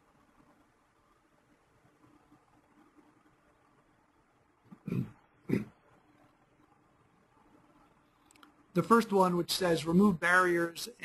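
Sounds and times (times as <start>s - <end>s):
person coughing: 4.8s - 5.7s.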